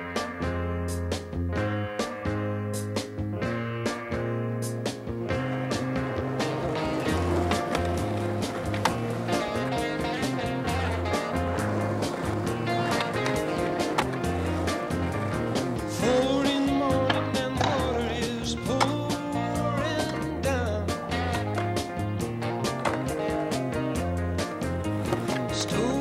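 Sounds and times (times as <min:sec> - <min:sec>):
music with repeating bass line: 0:00.0 - 0:26.0
skateboard wheels rolling on pavement: 0:04.8 - 0:26.0
skateboard clacking: 0:05.3 - 0:26.0.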